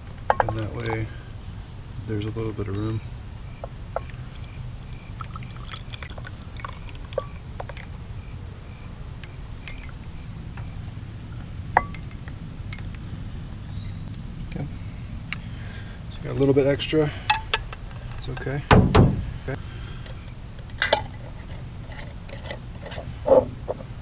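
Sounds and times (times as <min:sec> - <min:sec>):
steady low rumble: 0:00.0 - 0:24.0.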